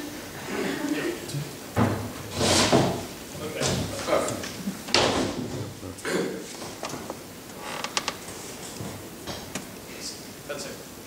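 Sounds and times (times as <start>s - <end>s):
short creak: 7.5s - 8.2s.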